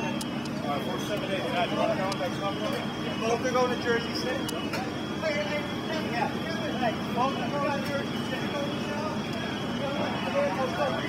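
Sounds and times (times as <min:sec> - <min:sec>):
people talking at once: 0:00.0 - 0:11.0
vehicles idling low rumble: 0:00.0 - 0:11.0.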